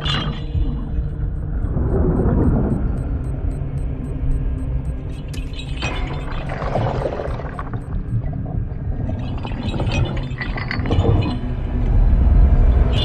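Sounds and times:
deep underwater rumble: 0.0s - 5.1s, 6.0s - 10.3s
film score music: 0.0s - 13.0s.

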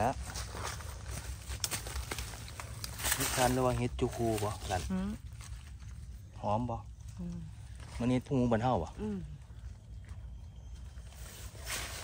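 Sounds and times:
rustles in dry leaf litter: 0.0s - 6.7s, 10.8s - 12.0s
low steady rumble: 0.0s - 12.0s.

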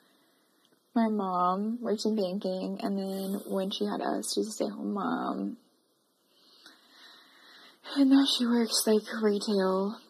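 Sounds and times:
person breathing in softly: 6.3s - 7.8s.

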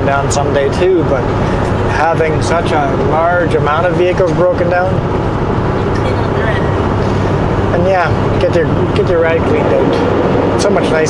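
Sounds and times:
truck engine and road noise: 0.0s - 11.0s.

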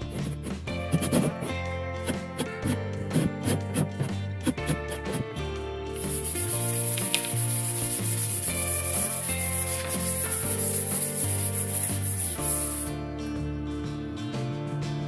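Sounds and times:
sandpaper rubbing on wood: 0.0s - 1.6s, 2.3s - 3.9s, 6.0s - 12.9s.

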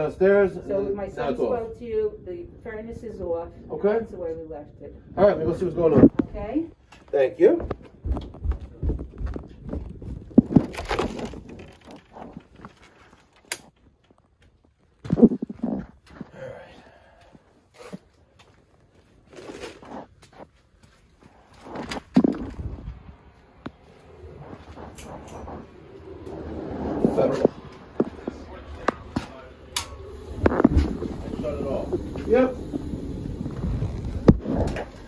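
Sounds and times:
microphone handling noise: 5.8s - 6.7s, 7.6s - 13.9s, 14.9s - 16.4s, 21.2s - 35.0s
footsteps: 6.0s - 35.0s.

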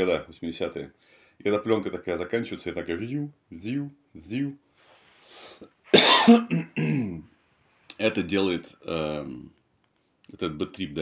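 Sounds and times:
faint breath in: 1.0s - 1.4s, 4.7s - 5.7s
man coughing: 5.9s - 7.2s
man clearing throat: 6.0s - 7.2s.

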